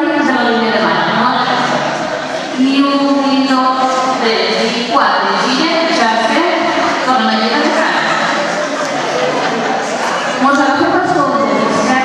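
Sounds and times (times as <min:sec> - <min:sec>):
person's voice: 0:00.0 - 0:09.5.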